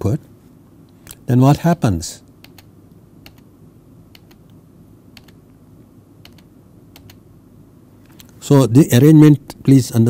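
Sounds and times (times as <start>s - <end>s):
faint low hum: 0.0s - 10.0s
computer input clicks: 2.4s - 3.4s, 4.1s - 4.5s, 5.2s - 5.4s, 6.2s - 7.2s.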